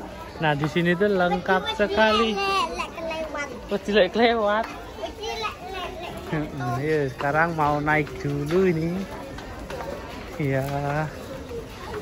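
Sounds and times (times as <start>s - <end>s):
children chattering: 0.0s - 12.0s
child's high voice: 5.0s - 6.2s.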